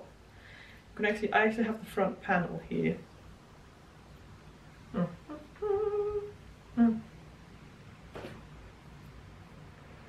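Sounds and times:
woman humming with closed mouth: 4.9 - 7.2.

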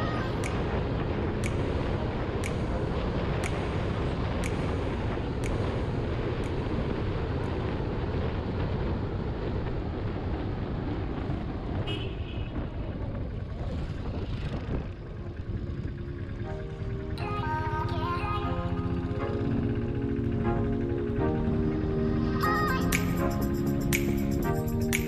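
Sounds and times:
background music: 0.0 - 6.6, 15.2 - 25.0
wind on microphone: 0.0 - 18.2.

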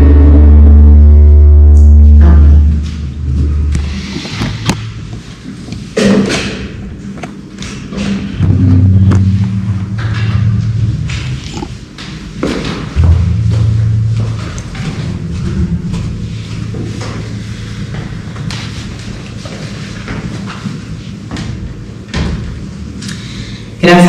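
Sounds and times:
loud low electrical hum: 0.0 - 24.0
handling knocks and thumps: 9.9 - 22.8.

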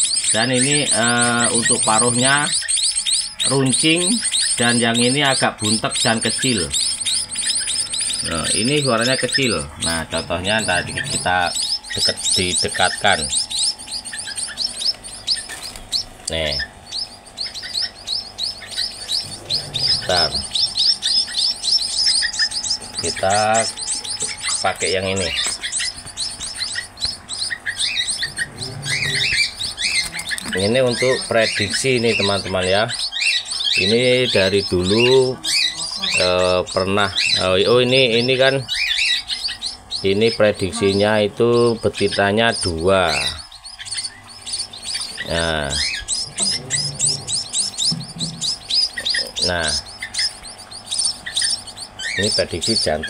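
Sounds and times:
young birds chirping: 0.0 - 53.0.

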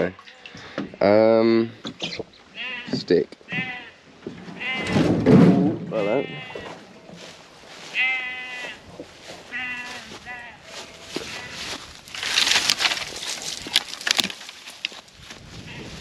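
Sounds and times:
sheep bleating: 2.5 - 4.0, 4.6 - 5.0, 5.9 - 6.8, 7.8 - 8.8, 9.4 - 11.8
dry grass and twigs crackling: 6.2 - 16.0.

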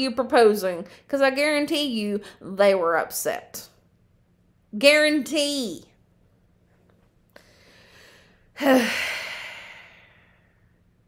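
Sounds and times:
woman sighing: 8.6 - 10.3.

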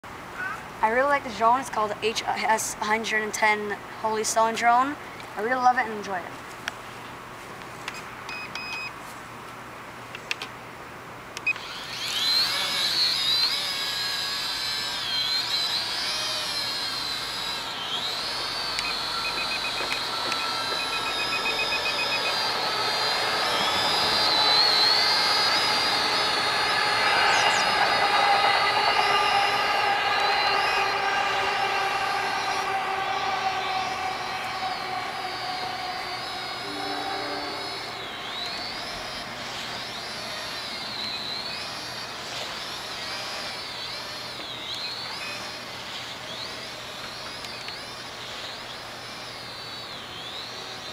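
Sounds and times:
toy drone propellers whining: 11.4 - 50.9.

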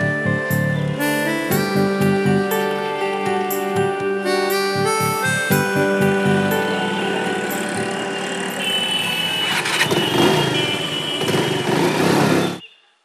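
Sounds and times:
music: 0.0 - 9.2.

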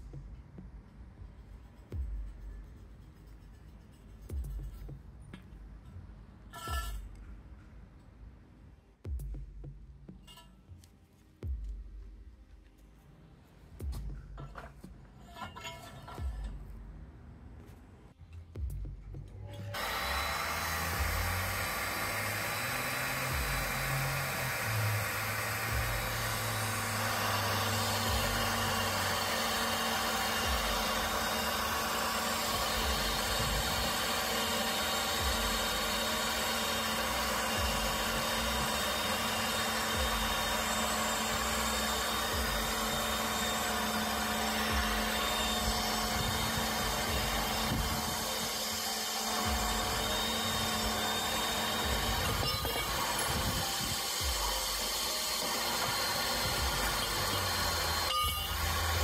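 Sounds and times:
pipe threading machine running: 19.7 - 59.0.

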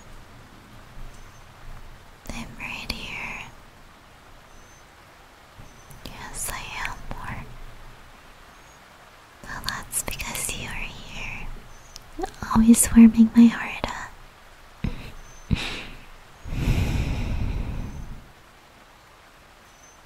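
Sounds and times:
woman whispering: 2.3 - 3.6, 6.0 - 7.5, 9.4 - 11.5, 12.2 - 14.2.

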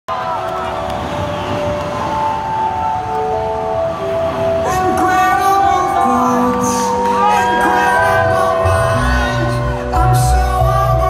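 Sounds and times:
crowd noise in a large hall: 0.1 - 11.0.

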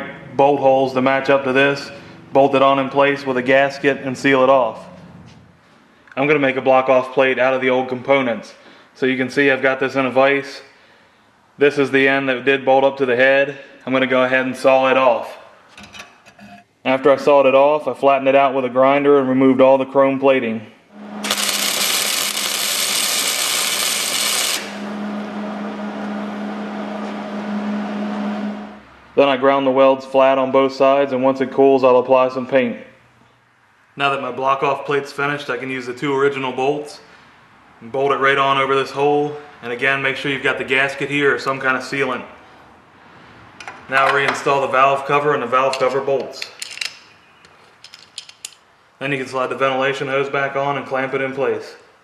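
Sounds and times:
welding noise: 20.9 - 25.4
steady hum: 20.9 - 29.2
angle grinder grinding steel: 21.0 - 24.9.

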